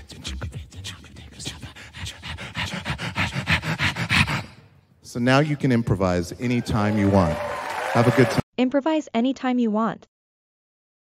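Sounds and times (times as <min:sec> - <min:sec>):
man panting into microphone: 0:01.4 - 0:04.7.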